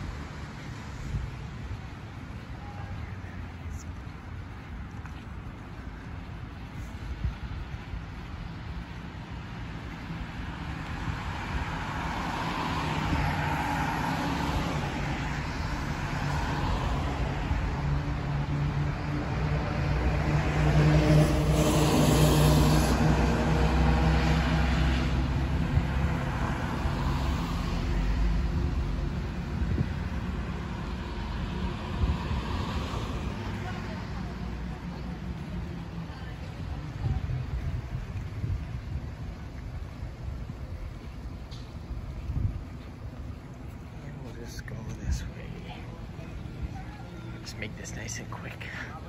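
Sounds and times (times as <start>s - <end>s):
bus driving past: 0.0s - 49.0s
road traffic passing: 0.0s - 49.0s.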